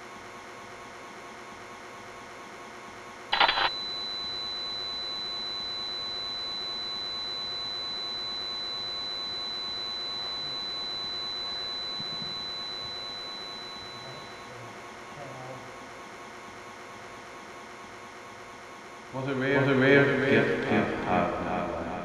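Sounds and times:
tape hiss: 3.3 - 8.2
high-pitched whine: 3.3 - 14.8.

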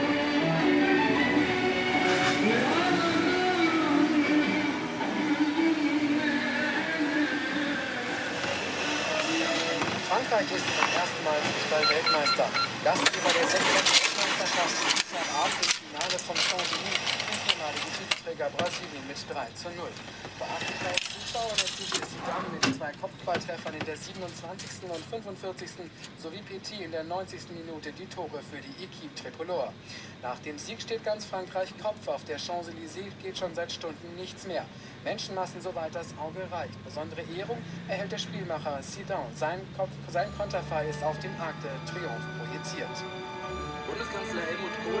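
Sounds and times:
music: 0.0 - 9.8, 40.2 - 45.0
indistinct voices: 0.0 - 22.8.

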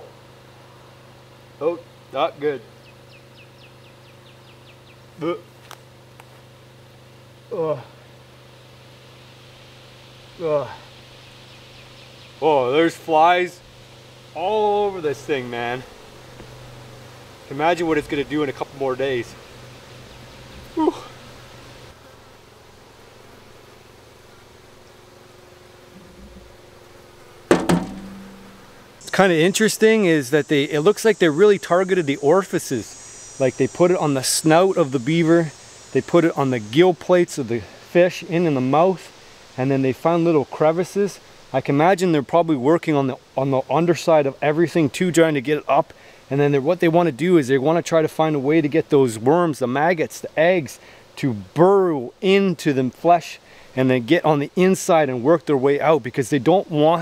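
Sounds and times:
steady low hum: 0.0 - 40.4
flies buzzing: 0.2 - 49.1, 49.8 - 55.1
man exclaiming in disgust: 7.5 - 8.0, 10.4 - 10.8, 20.8 - 21.2.

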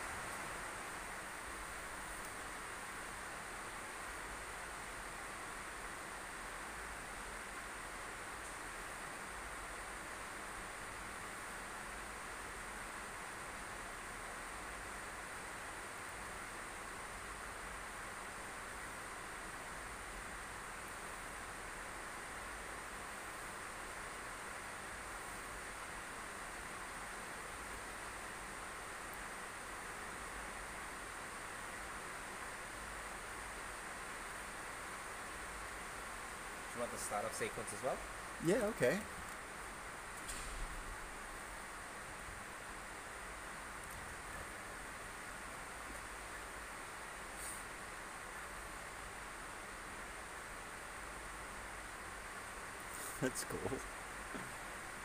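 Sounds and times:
room tone hiss: 0.0 - 55.0.

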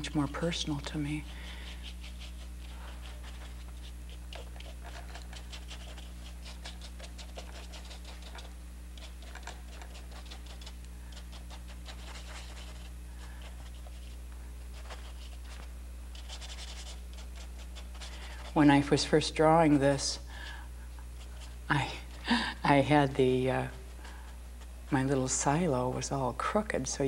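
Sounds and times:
paintbrush scratching on canvas: 0.0 - 20.1, 21.0 - 25.6
low electrical hum: 0.0 - 27.0.

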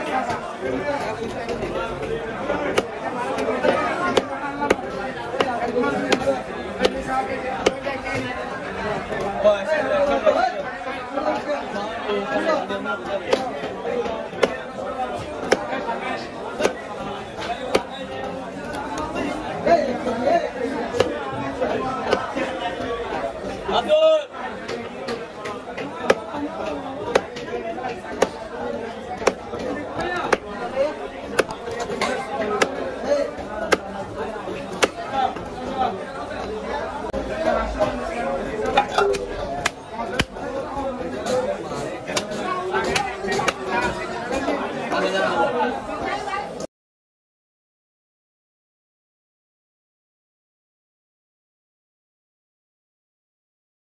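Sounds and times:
chattering voices: 0.0 - 46.7.

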